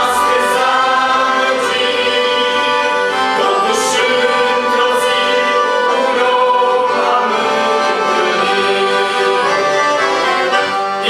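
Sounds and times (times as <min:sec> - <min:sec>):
accordions playing hymn melody: 0:00.0 - 0:11.0.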